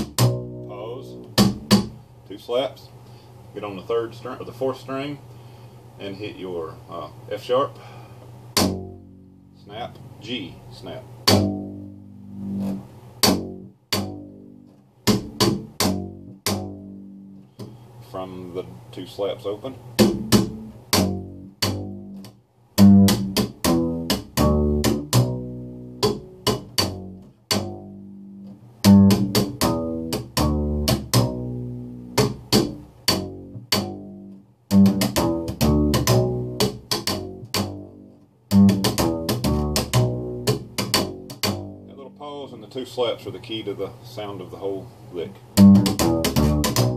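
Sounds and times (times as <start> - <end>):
upright bass slap playing: 0.0 - 2.0, 8.5 - 9.5, 11.2 - 17.8, 19.9 - 42.2, 45.5 - 46.9.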